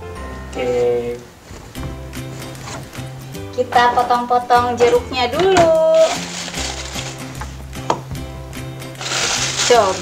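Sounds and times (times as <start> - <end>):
background music with held notes: 0.0 - 10.0
light knocks on a tiled counter: 7.8 - 8.3.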